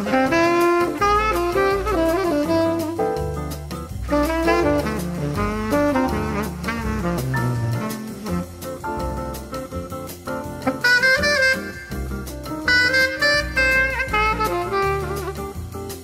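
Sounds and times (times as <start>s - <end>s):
tenor saxophone solo: 0.0s - 9.4s, 10.6s - 16.0s
bass and light drums: 0.0s - 16.0s.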